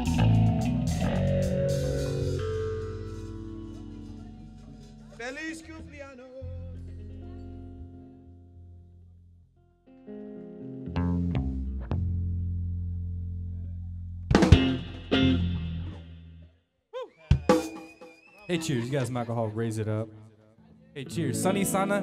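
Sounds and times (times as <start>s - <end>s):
electric guitar chords: 0.0s - 9.0s, 9.6s - 16.3s, 21.0s - 22.0s
bass guitar low notes: 0.0s - 16.5s
drum hits: 14.3s - 15.4s.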